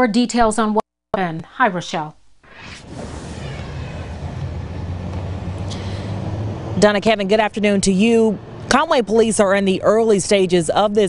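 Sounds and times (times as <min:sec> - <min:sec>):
brief hiss: 0:02.5 - 0:04.8
road noise: 0:02.5 - 0:11.0
vehicle engine humming: 0:02.8 - 0:11.0.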